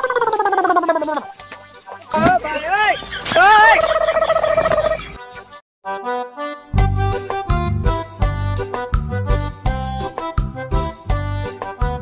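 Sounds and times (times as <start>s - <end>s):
warbling comedy sound effects: 3.2s - 5.0s.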